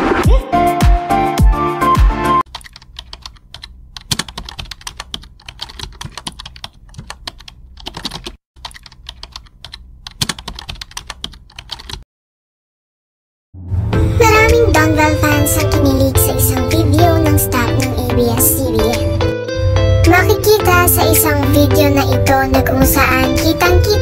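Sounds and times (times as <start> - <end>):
music: 0.0 - 2.4, 13.6 - 24.0
computer keyboard typing: 2.5 - 12.0.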